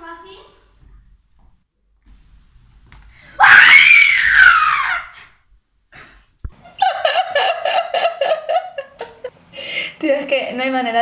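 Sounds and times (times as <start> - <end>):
young woman laughing hard: 6.6 - 9.4.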